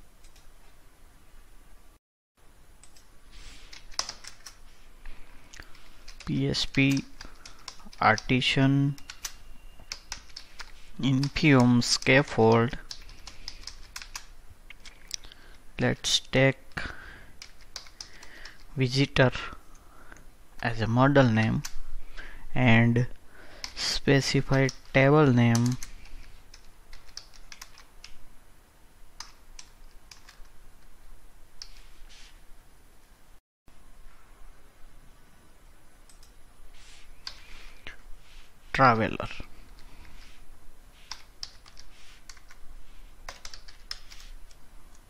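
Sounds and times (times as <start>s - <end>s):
slow keyboard keystrokes: 3.7s - 4.6s, 9.0s - 15.2s, 17.4s - 18.7s, 25.5s - 28.2s, 29.2s - 30.5s, 41.0s - 42.6s, 43.3s - 45.0s.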